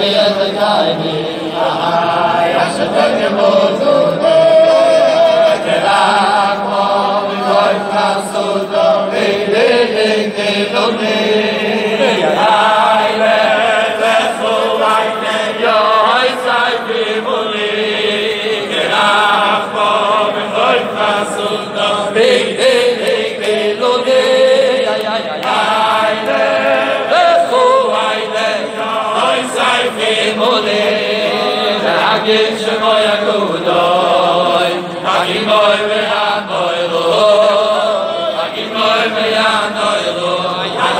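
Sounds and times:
group of men singing: 0.0 - 40.9.

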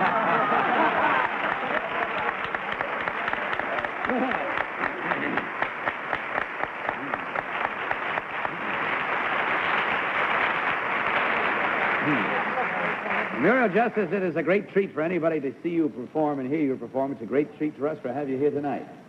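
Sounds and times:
audience applauding: 0.0 - 14.6.

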